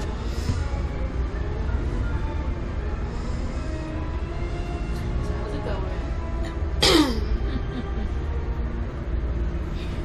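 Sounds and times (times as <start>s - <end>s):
train carriage rumble: 0.0s - 10.0s.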